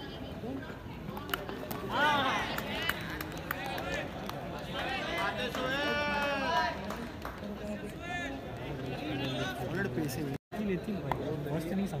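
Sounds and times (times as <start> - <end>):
players shouting: 1.9 - 6.9.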